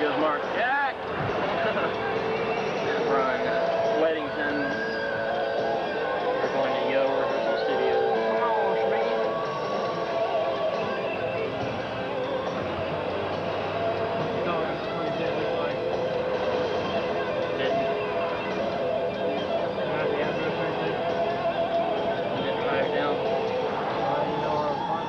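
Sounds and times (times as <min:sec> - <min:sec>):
car road and engine noise: 0:00.0 - 0:25.0
indistinct voices: 0:00.0 - 0:25.0
music: 0:00.0 - 0:25.0.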